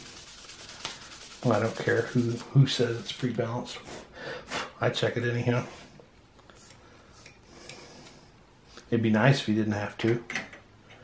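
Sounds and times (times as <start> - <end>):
man talking: 1.4 - 3.8, 4.8 - 5.8, 8.9 - 10.3.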